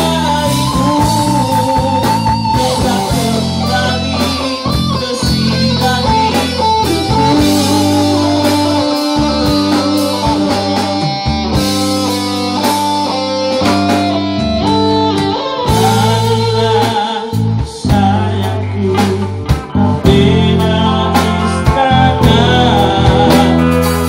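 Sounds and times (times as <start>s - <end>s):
drum kit beat: 0.0s - 24.0s
electric guitars through amplifiers: 0.0s - 24.0s.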